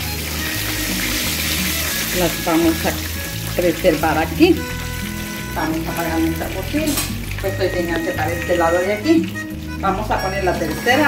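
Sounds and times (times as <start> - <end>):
background music with bass: 0.0 - 11.0
wings sizzling in hot oil: 0.0 - 11.0.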